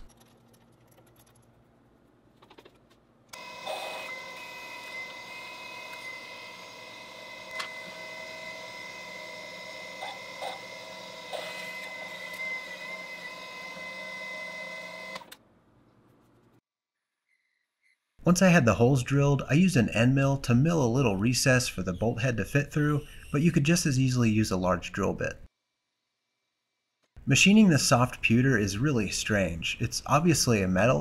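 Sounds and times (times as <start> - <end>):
milling machine spindle whine: 3.3 - 15.3.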